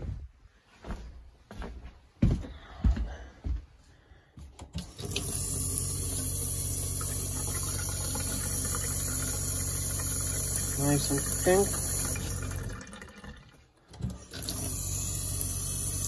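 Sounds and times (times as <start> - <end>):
water pump humming: 4.6 - 16.0
faucet running into metal sink: 4.8 - 16.0.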